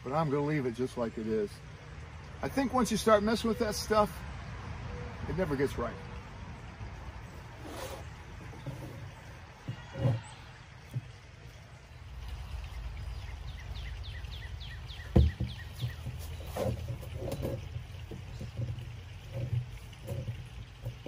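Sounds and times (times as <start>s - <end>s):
leaves rustling: 6.7s - 21.0s
bird chirping: 7.2s - 18.8s
small knocks: 8.4s - 11.4s, 15.0s - 21.0s
plastic barrel thump: 15.0s - 18.8s.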